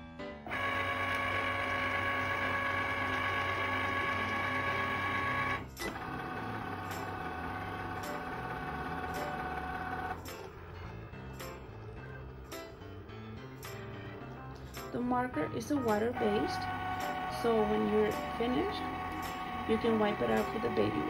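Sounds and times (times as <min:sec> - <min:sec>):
cutting machine motors whining: 0:00.5 - 0:10.9, 0:16.0 - 0:21.0.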